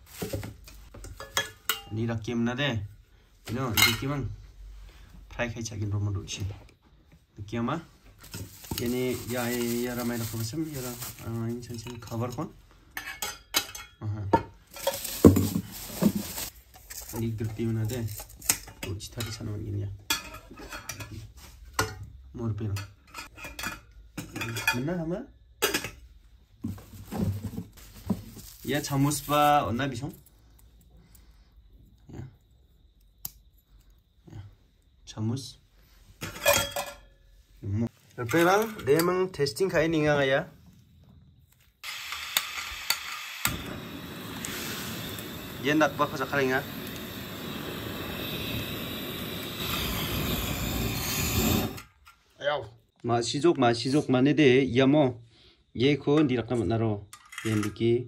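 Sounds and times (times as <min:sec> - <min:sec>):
camping pot and lid clattering: 0:00.7 - 0:01.9, 0:13.0 - 0:15.6, 0:22.8 - 0:24.9, 0:25.6 - 0:26.0, 0:36.2 - 0:37.2
camping stove hissing roar: 0:08.6 - 0:11.8, 0:14.7 - 0:18.8, 0:27.1 - 0:31.8, 0:41.8 - 0:52.1.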